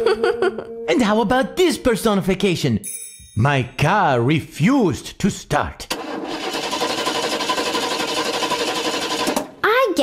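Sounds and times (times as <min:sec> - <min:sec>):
car engine cranking on starter: 0:05.9 - 0:09.5.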